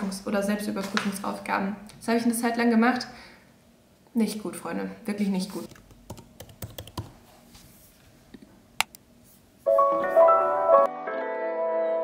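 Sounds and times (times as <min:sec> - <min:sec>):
keyboard key clicks: 0:08.8 - 0:09.0.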